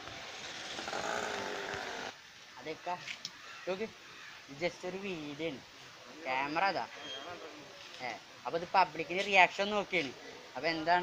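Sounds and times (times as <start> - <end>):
small motor vehicle engine running: 0.0 - 2.1
street traffic: 0.0 - 11.0.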